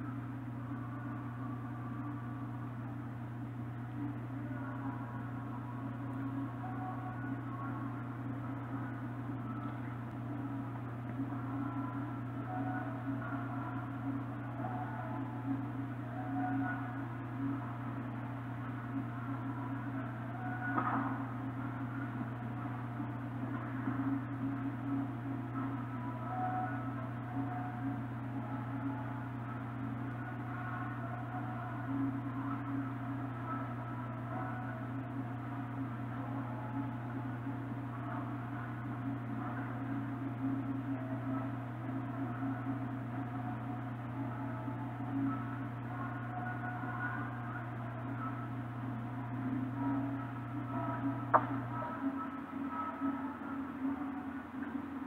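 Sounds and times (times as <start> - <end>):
faint muffled tones: 0.0 - 55.0
low hum: 0.0 - 55.0.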